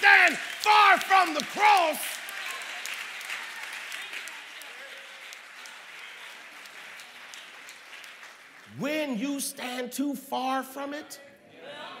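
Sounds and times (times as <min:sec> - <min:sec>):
congregation applauding: 0:00.0 - 0:09.8.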